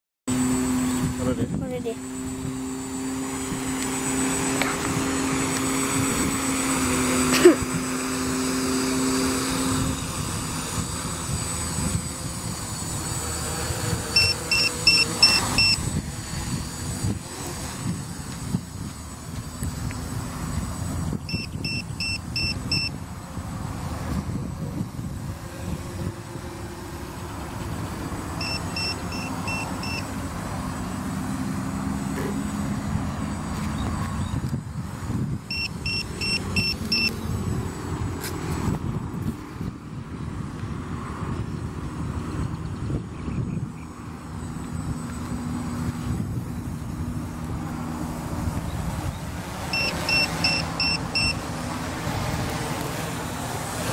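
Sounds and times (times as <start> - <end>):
quadcopter propellers whirring: 0.3 - 53.9
quick high beeps: 14.2 - 15.8, 21.3 - 23.0, 28.4 - 30.1, 35.5 - 37.2, 49.7 - 51.4.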